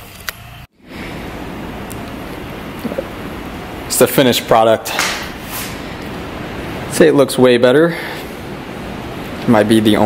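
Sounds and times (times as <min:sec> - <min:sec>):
steady hiss: 0:00.8 - 0:10.0.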